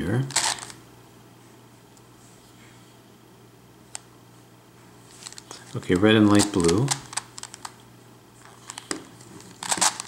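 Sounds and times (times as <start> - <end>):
puzzle pieces scraping rattle: 0.3 - 0.7, 6.2 - 7.7, 9.6 - 10.0.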